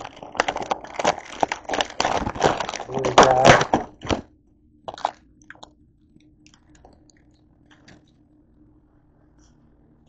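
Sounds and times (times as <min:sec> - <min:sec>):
plastic wrapper crinkling: 0:00.0 - 0:04.2, 0:04.9 - 0:05.7.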